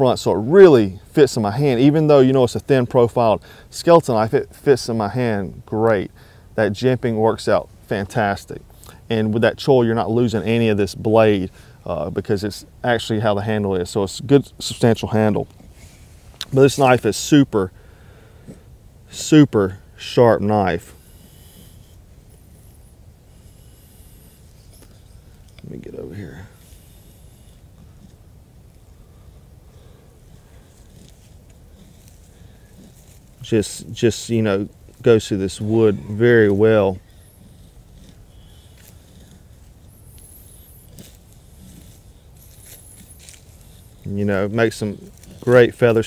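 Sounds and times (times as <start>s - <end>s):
knife scraping wooden stick: 35.5s - 44.2s.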